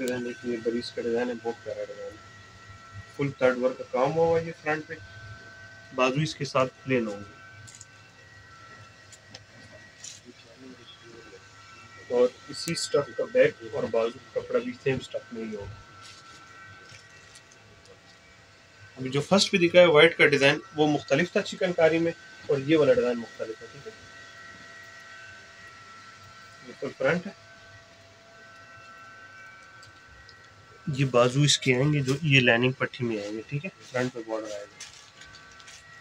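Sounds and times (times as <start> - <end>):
low hum: 0.0 - 36.0
thin high whine: 0.0 - 36.0.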